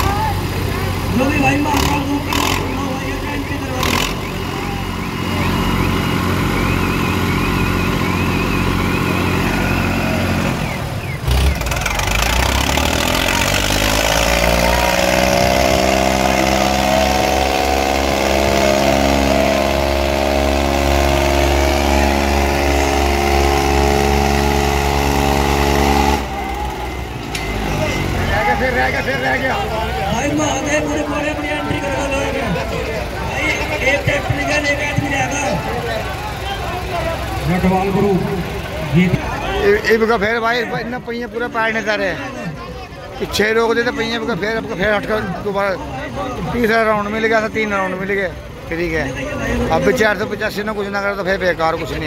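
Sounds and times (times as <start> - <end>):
tractor diesel engines revving: 0.0 - 52.0
voices: 0.0 - 52.0.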